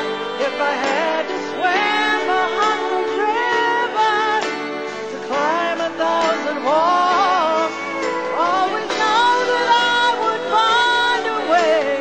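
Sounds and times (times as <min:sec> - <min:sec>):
recorded backing track: 0:00.0 - 0:12.0
woman singing karaoke: 0:00.0 - 0:12.0.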